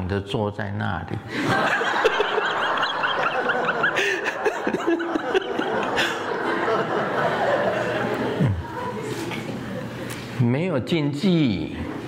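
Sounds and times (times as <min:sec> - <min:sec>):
audience laughing: 0:01.3 - 0:10.1
person laughing: 0:01.4 - 0:06.9.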